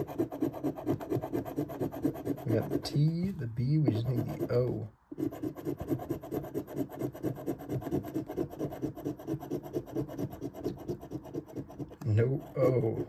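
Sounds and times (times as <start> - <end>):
scratch-off ticket being scratched: 0.0 - 13.0.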